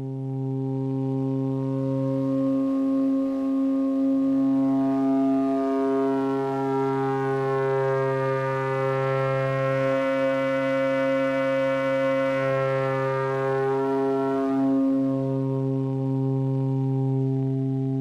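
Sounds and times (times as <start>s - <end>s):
low synthesizer drone: 0.0s - 18.0s.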